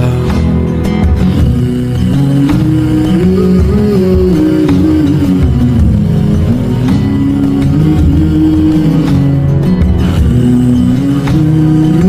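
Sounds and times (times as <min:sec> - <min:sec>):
pop love song: 0:00.0 - 0:12.0.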